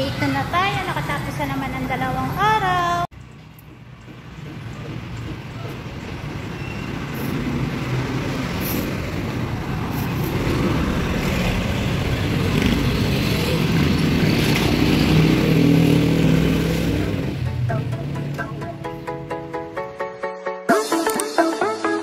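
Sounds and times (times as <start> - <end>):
motorcycle engines passing: 0.0 - 18.6
car engines passing: 0.0 - 18.8.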